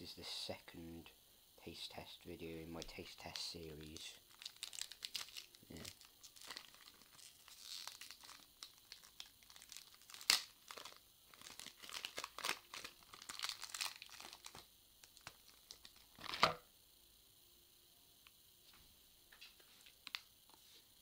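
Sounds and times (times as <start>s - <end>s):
plastic wrapper crinkling and tearing: 3.8s - 16.6s, 20.0s - 20.3s
wrapper snapping: 4.3s - 16.6s.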